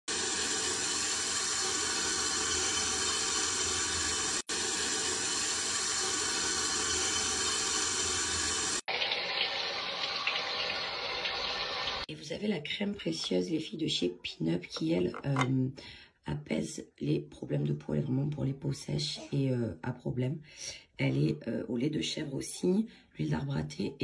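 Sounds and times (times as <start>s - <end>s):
shower water running: 0.1s - 12.1s.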